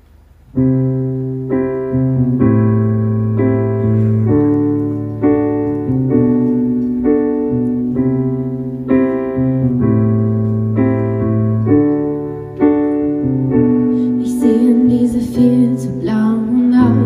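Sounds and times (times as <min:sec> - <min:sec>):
sustained piano chords: 0:00.0 - 0:17.0.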